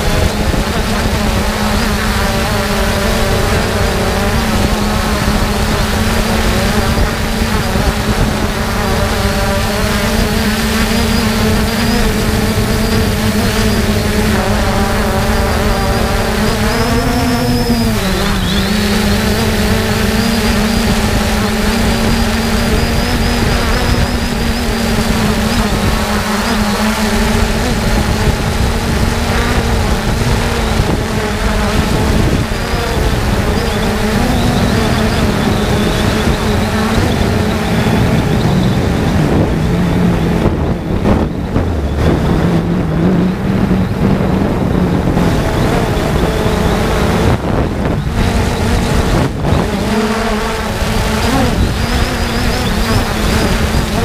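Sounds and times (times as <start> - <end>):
drone propellers humming: 0.0 - 54.0
wind rumble on microphone: 0.0 - 54.0.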